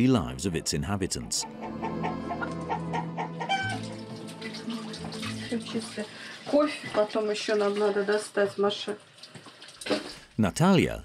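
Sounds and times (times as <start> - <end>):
running water: 2.7 - 10.3
woman speaking: 5.4 - 9.0.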